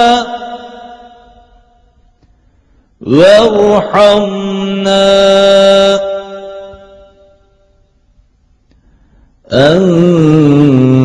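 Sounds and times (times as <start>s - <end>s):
man reciting melodically: 0.0s - 1.9s, 2.9s - 7.6s, 9.4s - 11.0s.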